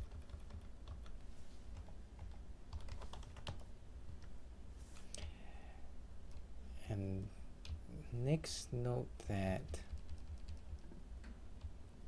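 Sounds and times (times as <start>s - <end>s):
computer keyboard typing: 0.0s - 1.2s, 1.8s - 3.7s, 9.8s - 10.9s
low steady hum: 0.0s - 12.0s.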